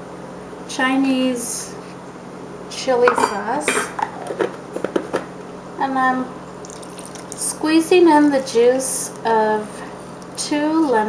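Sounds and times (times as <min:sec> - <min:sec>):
utensils tapping a bowl: 0:03.1 - 0:04.5.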